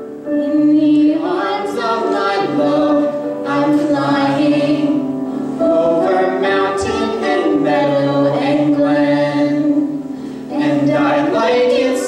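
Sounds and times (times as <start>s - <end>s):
man and woman singing duet: 0.3s - 12.0s.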